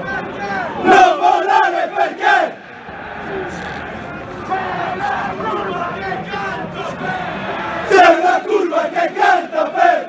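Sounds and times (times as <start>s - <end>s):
crowd chanting in unison: 0.5s - 10.0s.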